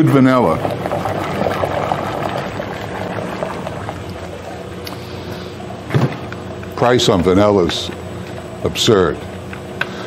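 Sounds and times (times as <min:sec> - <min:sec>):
steady machine hum: 0:00.0 - 0:10.0
liquid splashing into machine: 0:00.5 - 0:05.0.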